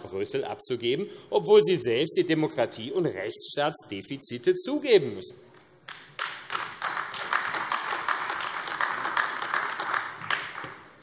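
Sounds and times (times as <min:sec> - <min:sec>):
applause: 0:05.9 - 0:11.0.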